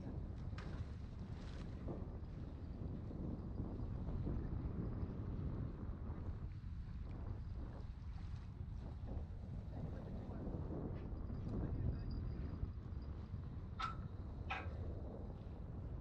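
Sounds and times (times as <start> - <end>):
wind on microphone: 0.0 - 16.0.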